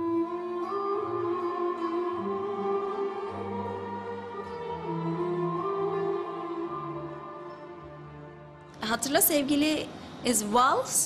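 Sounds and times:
orchestra strings playing slow waltz: 0.0 - 8.8.

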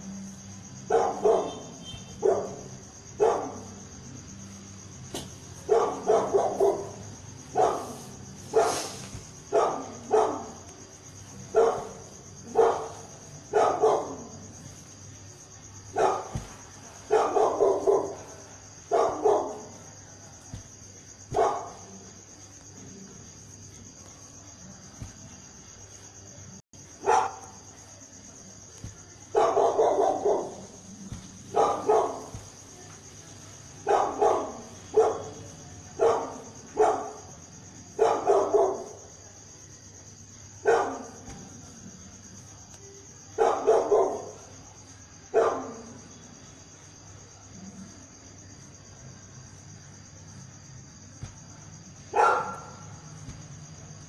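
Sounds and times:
dog barking: 0.8 - 3.8, 5.6 - 10.8, 11.4 - 14.5, 15.9 - 20.7, 21.3 - 22.1, 27.0 - 27.6, 29.3 - 32.5, 33.8 - 39.1, 40.6 - 41.8, 43.3 - 44.6, 45.3 - 46.0, 51.2 - 53.4.

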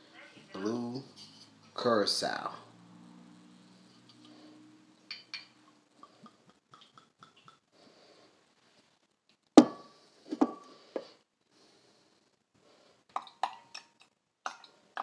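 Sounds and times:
glass knocking on stone countertop: 9.6 - 10.7.

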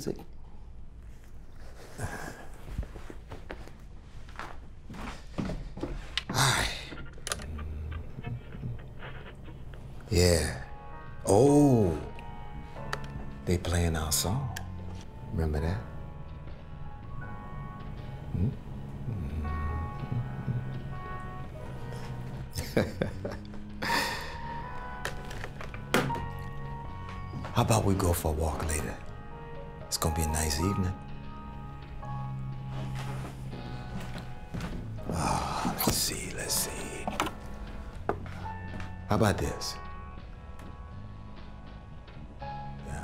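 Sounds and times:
soft footsteps: 1.1 - 7.1, 32.0 - 39.0
man laughing: 22.6 - 24.4.

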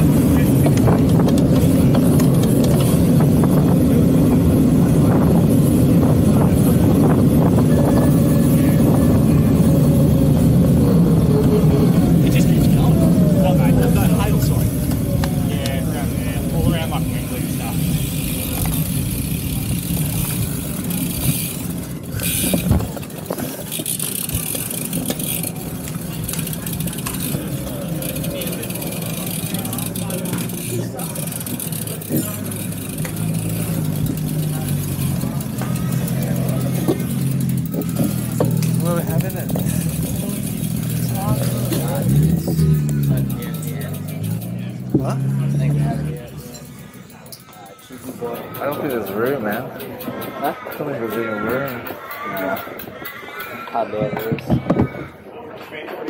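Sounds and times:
wind and road noise on microphone: 0.0 - 46.7, 54.0 - 55.3
indistinct voices chatting: 0.0 - 56.0.

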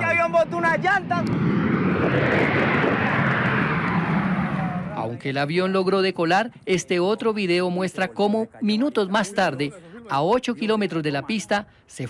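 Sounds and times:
jet plane passing low overhead: 0.0 - 6.7.

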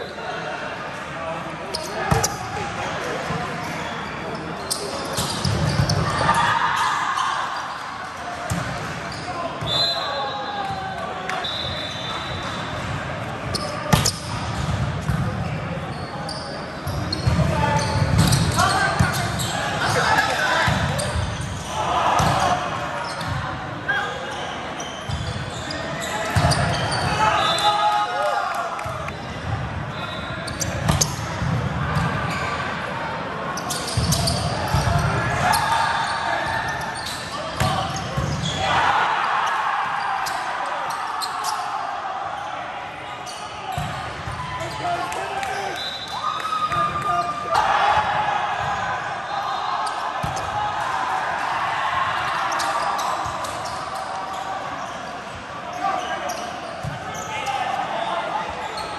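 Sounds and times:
players' voices: 0.0 - 58.9.

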